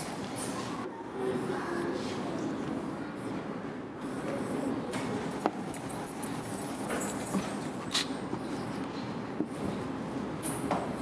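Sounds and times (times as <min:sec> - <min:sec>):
marker tapping and scraping whiteboard: 0:04.3 - 0:09.8.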